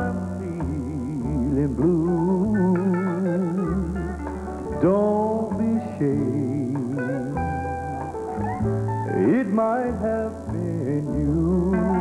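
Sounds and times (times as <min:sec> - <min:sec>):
man singing with vibrato: 0:00.0 - 0:08.4, 0:09.1 - 0:12.0
guitar: 0:00.0 - 0:12.0
piano: 0:00.0 - 0:12.0.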